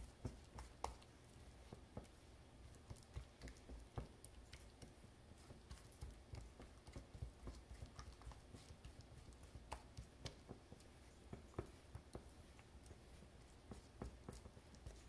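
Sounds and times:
spatula tapping bowl: 0.0 - 2.1, 2.7 - 13.0, 13.6 - 15.0.

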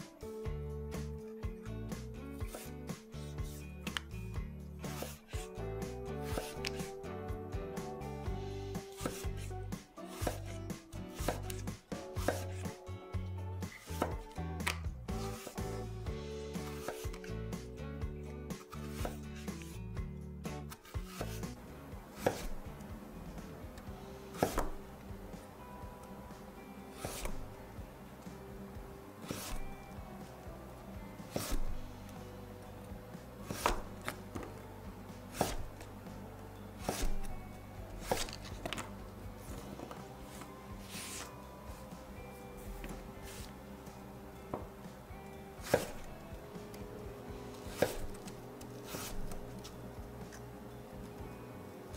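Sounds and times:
knife slicing on wooden board: 2.4 - 4.1, 4.8 - 5.6, 6.2 - 6.9, 8.8 - 9.5, 10.1 - 10.6, 11.2 - 12.8, 13.8 - 15.8, 16.6 - 17.3, 18.5 - 19.8, 20.6 - 21.6, 22.2 - 22.7, 24.3 - 24.8, 26.9 - 27.5, 29.2 - 29.8, 31.3 - 31.8, 33.4 - 34.5, 35.3 - 35.9, 36.8 - 37.4, 38.0 - 38.9, 39.5 - 41.3, 45.6 - 46.2, 47.5 - 50.5.

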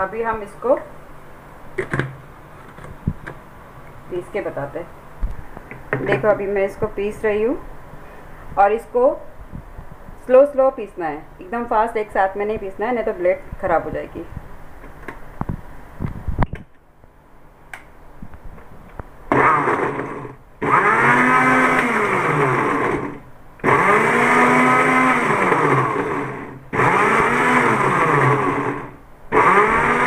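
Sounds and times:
mixer grinder motor pulsing: 19.3 - 30.0.

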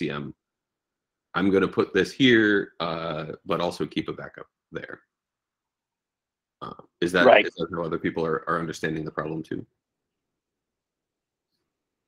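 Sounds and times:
man saying uh: 0.0 - 0.3, 1.4 - 5.0, 6.6 - 9.6.

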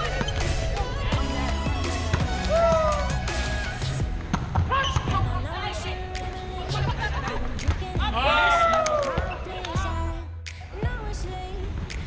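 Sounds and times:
background pop music: 0.0 - 12.0.

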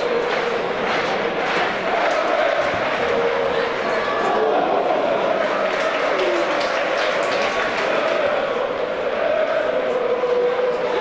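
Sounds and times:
crowd chanting and singing: 0.0 - 11.0
general crowd noise: 0.0 - 11.0.

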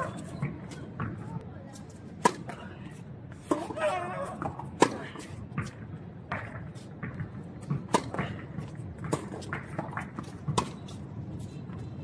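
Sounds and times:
tennis racket hitting ball: 2.2 - 2.6, 3.4 - 10.9.

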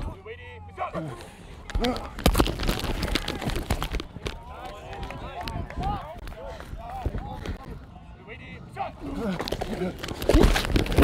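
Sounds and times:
players shouting: 2.9 - 10.1.

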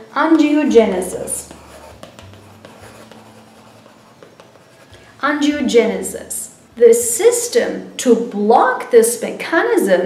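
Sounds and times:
chalk scratching on chalkboard: 0.8 - 5.2.

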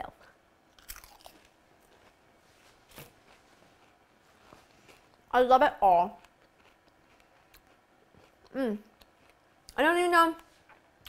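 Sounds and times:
chewing puff pastry: 0.7 - 9.8
soft pastry crunch: 0.7 - 11.0.

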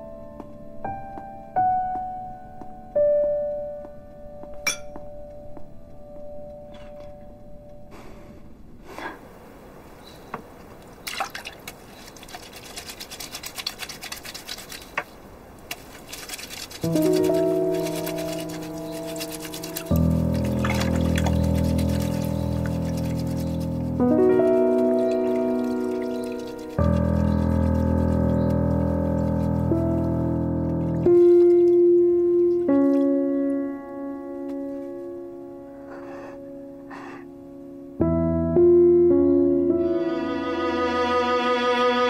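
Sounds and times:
water sloshing and splashing: 10.5 - 33.2
piano note: 16.9 - 35.8, 38.0 - 42.0
sustained music chords: 38.0 - 42.0.

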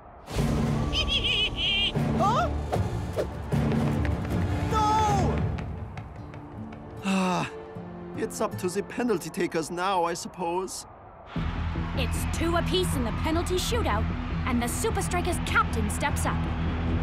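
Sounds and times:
wordless gasps and grunts: 7.0 - 7.6.

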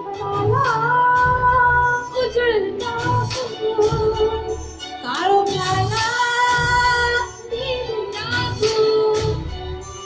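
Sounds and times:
amplified musical accompaniment: 0.0 - 10.0.

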